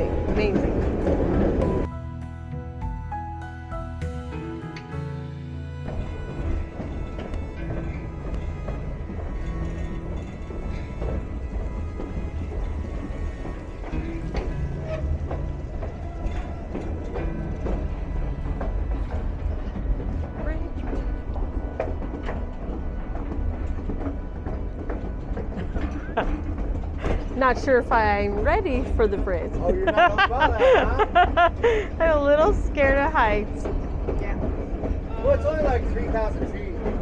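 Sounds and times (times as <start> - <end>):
train wheels clicking and knocking: 0.0 - 1.9, 5.8 - 37.0
train rumbling along track: 0.0 - 37.0.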